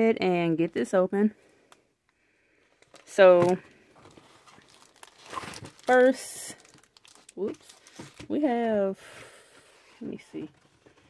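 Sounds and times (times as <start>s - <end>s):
plastic envelope crinkling: 2.6s - 8.8s.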